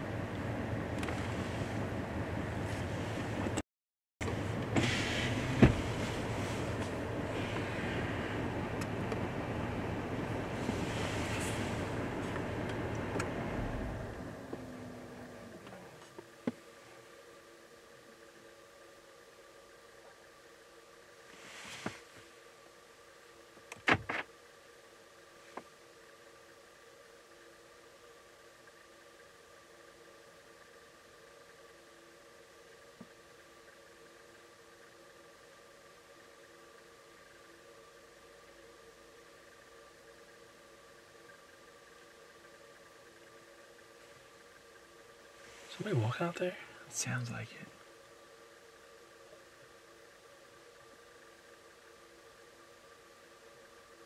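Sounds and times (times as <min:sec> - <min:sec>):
vehicle engine running: 0:00.0 - 0:03.6, 0:04.2 - 0:19.0.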